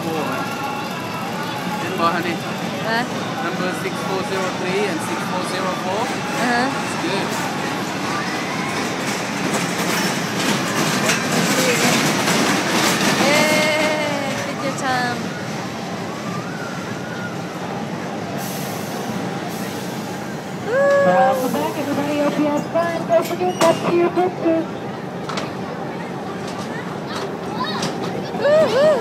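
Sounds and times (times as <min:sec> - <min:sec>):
roller coaster cars clattering: 0:00.0 - 0:18.3, 0:20.9 - 0:29.0
fairground noise: 0:00.0 - 0:29.0
voices and shouts: 0:20.6 - 0:24.8, 0:26.1 - 0:29.0.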